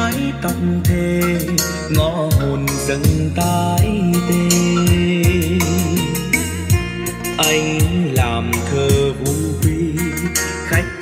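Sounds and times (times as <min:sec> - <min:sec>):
ballad over speaker: 0:00.0 - 0:11.0.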